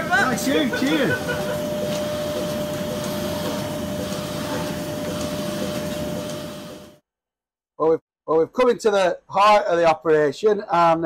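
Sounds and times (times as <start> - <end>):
milking machine hum: 0.0 - 7.0.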